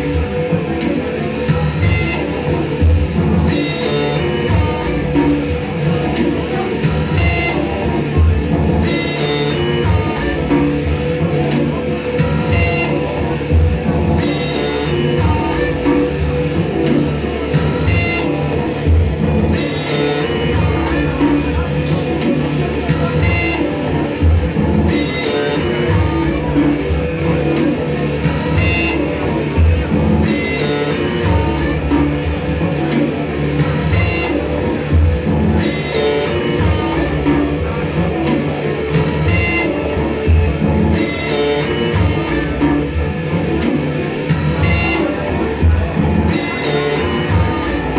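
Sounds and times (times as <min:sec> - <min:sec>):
live rock band playing: 0:00.0 - 0:47.9.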